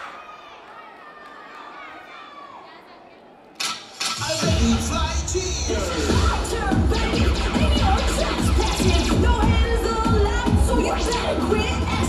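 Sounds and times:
faint crowd chatter: 0.0 - 12.0
cheer music with heavy bass beat: 3.6 - 12.0.

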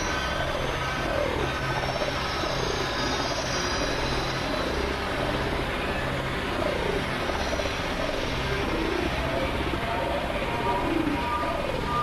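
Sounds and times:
electronic noise drone: 0.0 - 12.0.

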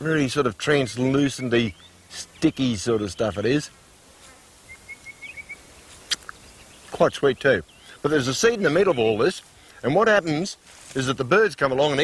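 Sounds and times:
small bird chirping: 0.7 - 3.6, 4.6 - 9.4.

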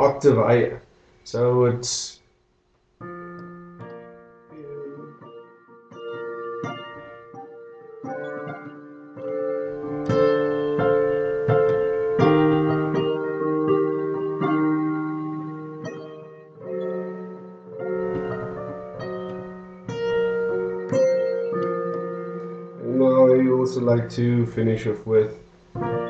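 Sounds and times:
digital piano playing chords: 3.0 - 26.0.

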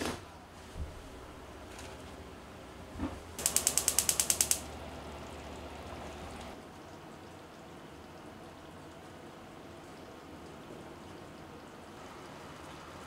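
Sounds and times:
gas burning hiss: 3.0 - 4.8
stove igniter clicking: 3.4 - 4.7.

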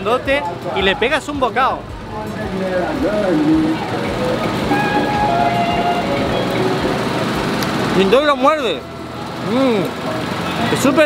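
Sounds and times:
crowd voices: 0.0 - 11.0
vehicle traffic: 0.0 - 11.0.

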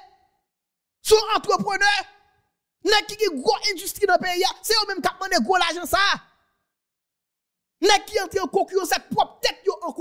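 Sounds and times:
man speaking: 2.8 - 6.3, 7.8 - 10.0.

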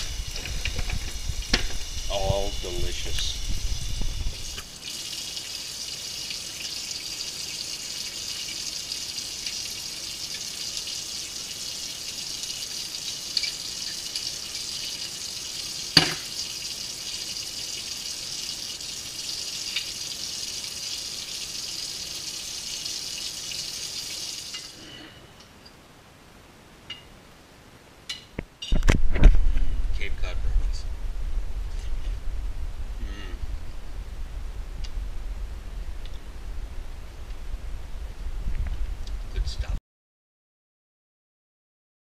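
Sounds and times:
liquid hissing: 0.0 - 24.8.

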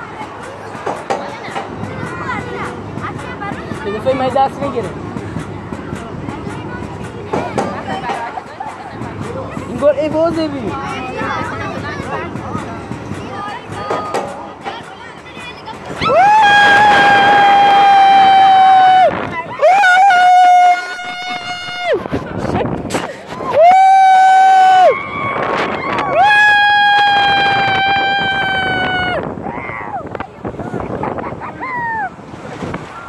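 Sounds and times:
wind on microphone: 15.8 - 33.0
rider whooping: 16.0 - 22.0, 23.4 - 30.2, 30.8 - 32.2.

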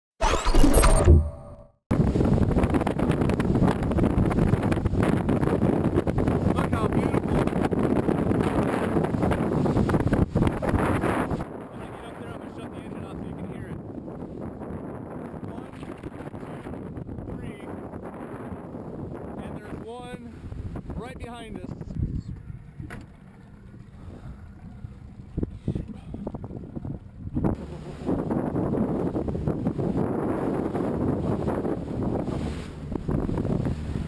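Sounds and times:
wind buffeting microphone: 1.9 - 34.0.

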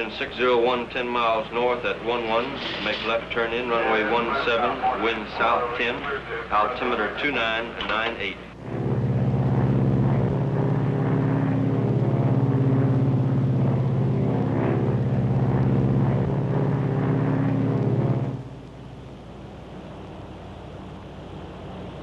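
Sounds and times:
propeller aircraft engines droning: 0.0 - 22.0.

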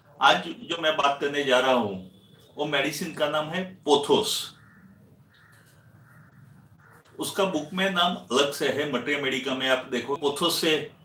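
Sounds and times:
faint distant bird call: 4.5 - 7.2.

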